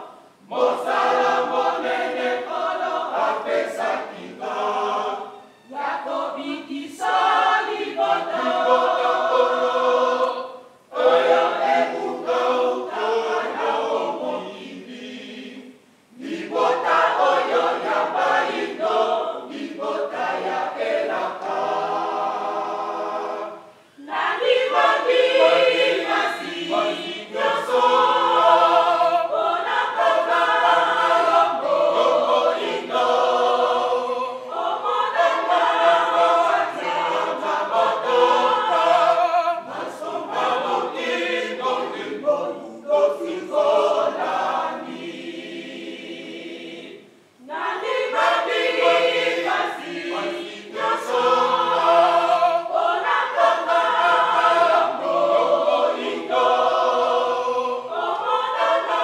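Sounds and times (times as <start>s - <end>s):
women's choir singing a hymn: 0.0s - 59.0s.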